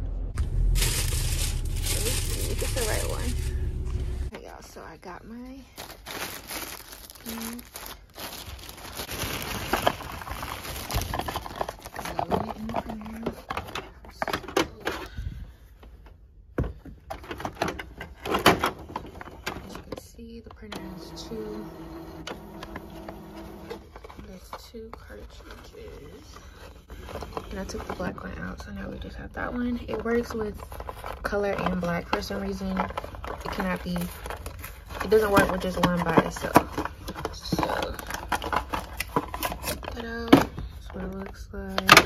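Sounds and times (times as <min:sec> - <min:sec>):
plastic bag crinkling: 0:00.4 - 0:04.1, 0:05.3 - 0:13.2
printer mechanical hum: 0:20.7 - 0:23.8.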